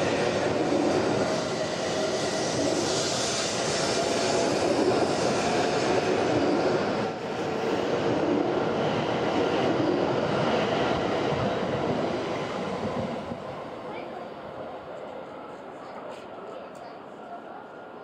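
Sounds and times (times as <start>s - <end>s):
high-speed train passing: 0.0s - 18.0s.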